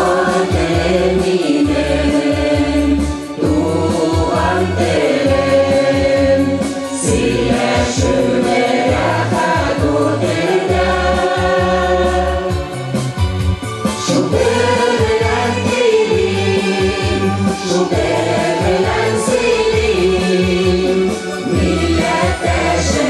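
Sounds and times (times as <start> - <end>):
mixed choir singing: 0.0 - 12.8, 13.9 - 23.0
instrumental accompaniment with bass beat: 0.0 - 23.0.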